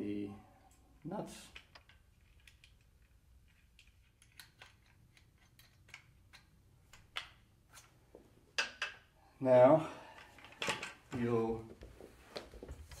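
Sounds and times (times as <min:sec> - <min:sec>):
small metal clicks: 0:01.5 - 0:07.4.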